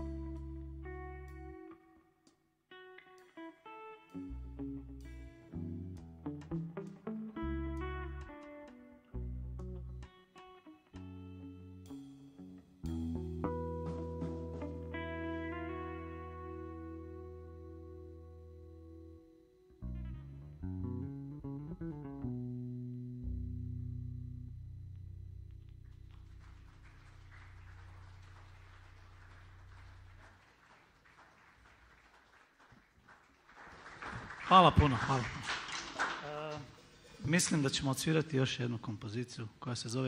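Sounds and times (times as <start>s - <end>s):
electric guitar with bass: 0.0s - 2.0s, 2.7s - 30.4s
applause: 25.9s - 36.8s.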